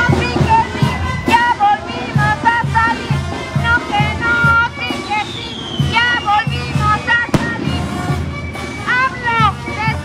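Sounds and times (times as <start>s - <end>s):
voices singing: 0.0s - 10.0s
drum beating: 5.8s - 10.0s.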